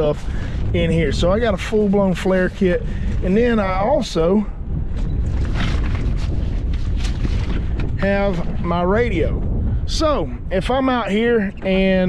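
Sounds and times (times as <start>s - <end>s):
gear clicks and rustles: 0.0s - 9.1s
steady low rumble: 0.0s - 12.0s
wind buffeting microphone: 0.0s - 12.0s.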